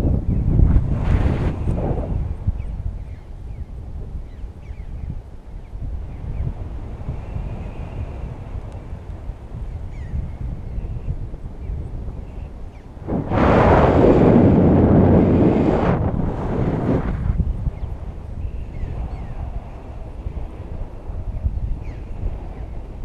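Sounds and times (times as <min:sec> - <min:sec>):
wind buffeting microphone: 0:00.0 - 0:23.0.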